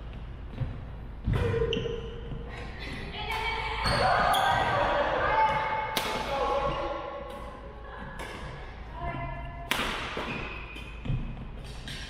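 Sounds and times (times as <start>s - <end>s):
rackets hitting shuttlecock: 5.5s - 6.4s, 7.2s - 8.6s, 9.6s - 12.0s.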